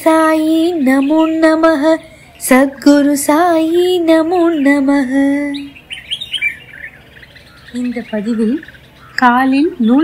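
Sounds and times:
small birds chirping: 0.0s - 10.0s.

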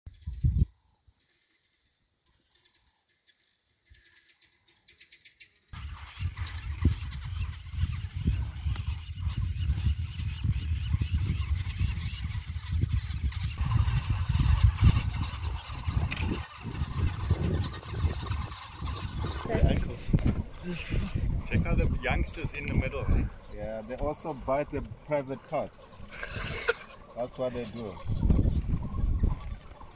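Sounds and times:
high-pitched chirping calls: 3.9s - 29.9s.

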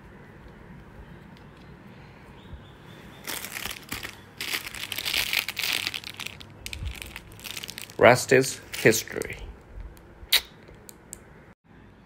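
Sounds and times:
plastic packaging crinkling: 3.2s - 9.4s.

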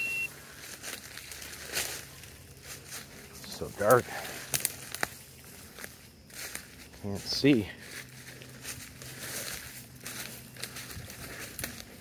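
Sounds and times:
footsteps crunching on leaf litter: 0.0s - 12.0s.

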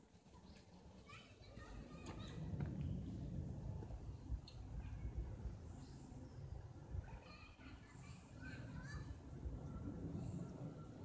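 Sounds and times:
distant children playing: 0.0s - 11.0s
low rumble: 2.2s - 7.0s.

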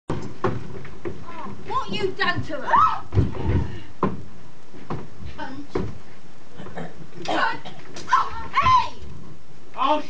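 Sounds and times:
recording hiss: 0.1s - 10.0s.

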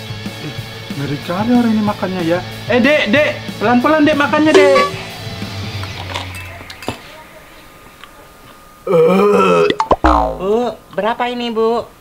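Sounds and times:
metal spoon clinking on bowl: 4.6s - 5.1s.

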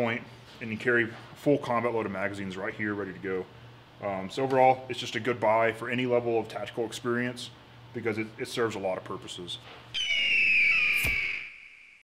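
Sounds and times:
high falling tone: 10.0s - 12.0s.

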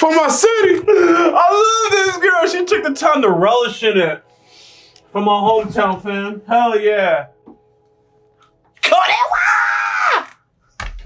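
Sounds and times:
person yelling high-pitched: 8.8s - 10.3s.

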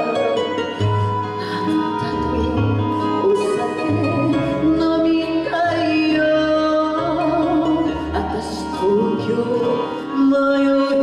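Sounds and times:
backing music: 0.0s - 11.0s
woman singing into a microphone: 1.4s - 11.0s.

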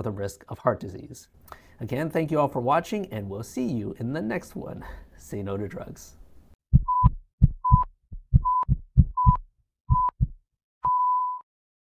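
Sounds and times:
heartbeat thumps: 6.7s - 10.4s
long steady flatline beep: 6.8s - 10.1s, 10.9s - 11.4s
short high monitor beeps: 6.8s - 10.2s.

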